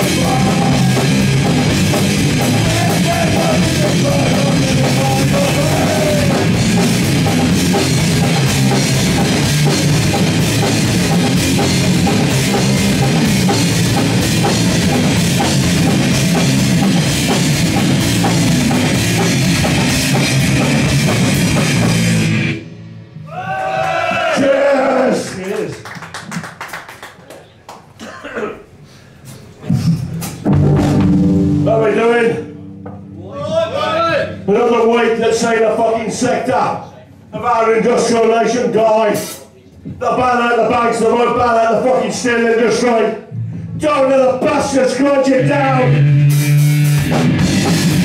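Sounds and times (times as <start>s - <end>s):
band playing: 0.0s - 23.0s, 29.8s - 36.8s, 45.2s - 48.0s
electric guitar: 0.0s - 23.0s, 30.5s - 34.5s, 45.5s - 48.0s
drum kit beat: 0.0s - 23.5s, 29.3s - 35.0s, 45.4s - 48.0s
bass guitar: 0.0s - 24.2s, 29.6s - 36.3s, 43.3s - 48.0s
crowd hand clapping: 25.2s - 28.0s
person speaking: 31.6s - 41.1s.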